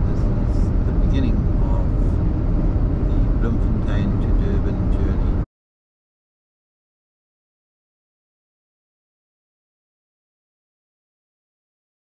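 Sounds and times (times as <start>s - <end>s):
car road and engine noise: 0.0s - 5.5s.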